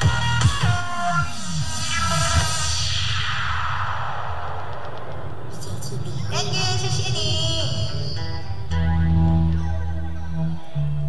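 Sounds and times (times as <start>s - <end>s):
falling whoosh sweep: 1.0s - 6.4s.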